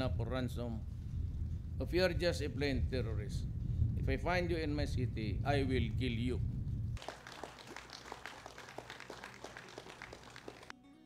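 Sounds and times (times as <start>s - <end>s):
audience applause: 7.0s - 10.7s.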